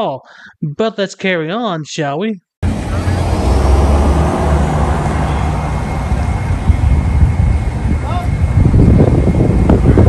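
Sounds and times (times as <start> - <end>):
low rumble of street traffic: 2.6 - 10.0.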